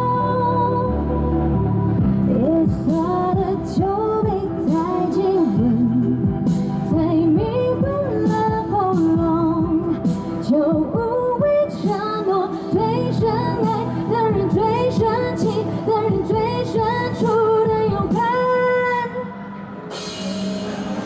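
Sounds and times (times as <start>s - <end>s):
woman singing pop song live: 0.0s - 19.9s
backing music: 0.0s - 21.0s.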